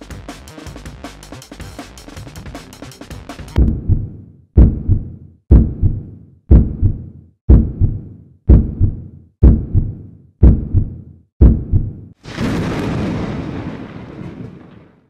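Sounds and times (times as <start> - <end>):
heartbeat thumps: 3.5 - 12.1.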